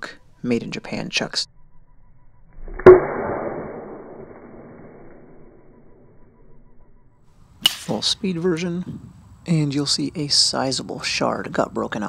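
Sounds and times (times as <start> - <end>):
wooden stick cracking a board: 7.6 - 8.0.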